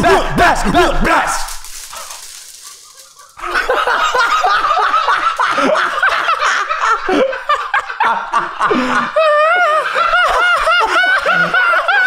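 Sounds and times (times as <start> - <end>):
men laughing: 1.8 - 12.0.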